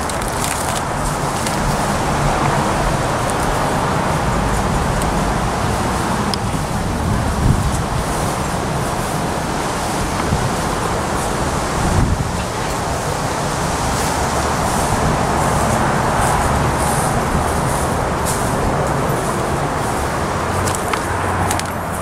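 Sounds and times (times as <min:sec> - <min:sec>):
road traffic noise: 0:00.0 - 0:22.0.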